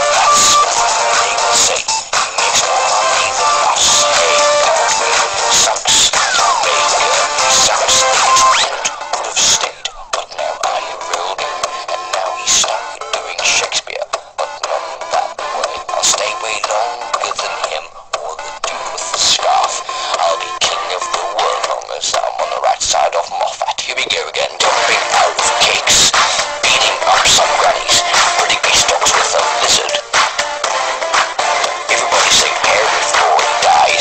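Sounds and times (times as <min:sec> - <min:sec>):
electronic pop music: 0:00.0 - 0:34.0
synthetic-sounding singing: 0:00.0 - 0:34.0.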